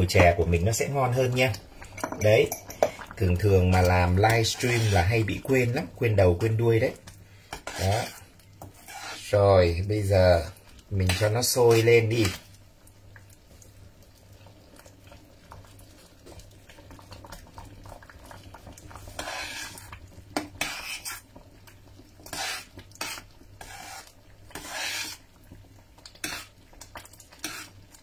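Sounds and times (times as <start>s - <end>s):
metal spoon scraping saucepan: 4.0s - 5.3s, 7.5s - 9.3s, 19.2s - 19.8s, 20.6s - 21.2s, 22.3s - 25.2s, 27.4s - 27.8s.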